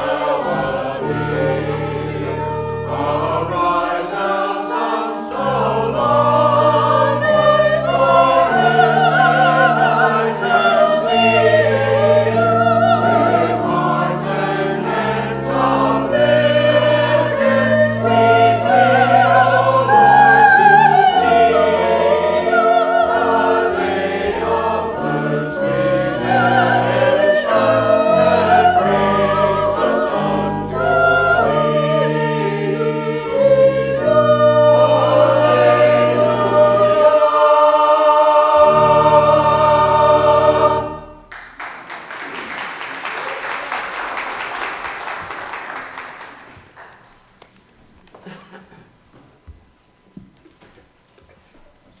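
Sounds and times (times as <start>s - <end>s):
low organ notes: 0.0s - 41.3s
mixed choir singing: 0.0s - 41.3s
applause: 41.3s - 47.3s.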